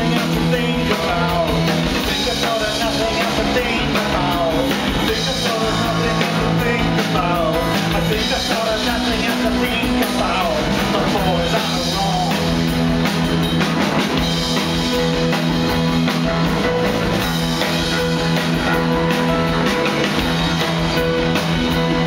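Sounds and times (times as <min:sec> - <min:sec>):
bass guitar: 0:00.0 - 0:22.0
drums: 0:00.0 - 0:22.0
electric guitar: 0:00.0 - 0:22.0.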